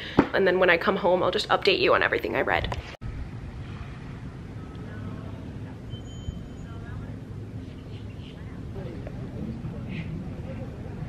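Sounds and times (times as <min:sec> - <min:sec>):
faint high whistling tones: 0:04.6 - 0:08.6.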